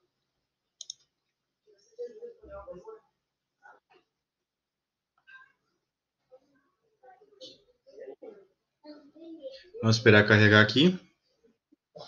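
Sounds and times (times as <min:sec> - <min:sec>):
computer mouse click: 0:00.8 - 0:01.0.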